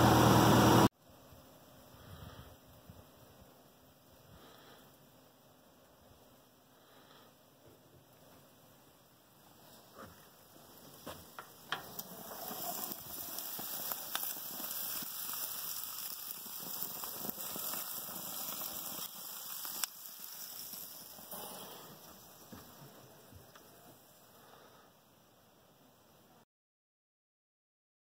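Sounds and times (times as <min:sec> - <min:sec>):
chicken sizzling on a grill: 0:09.3 - 0:24.8.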